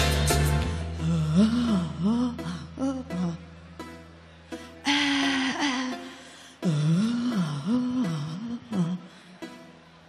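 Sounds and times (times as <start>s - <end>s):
person singing wordless vocal: 4.9s - 9.6s.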